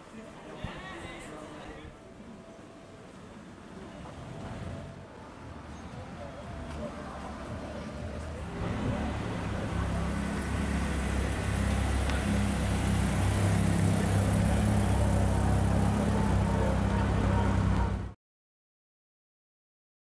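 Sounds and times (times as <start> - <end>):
car engine at low revs: 8.6 - 18.1.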